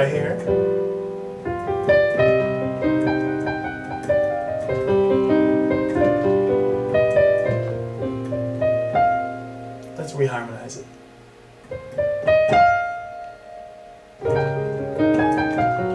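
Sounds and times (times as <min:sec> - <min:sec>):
digital piano playing chords: 0:00.0 - 0:15.9.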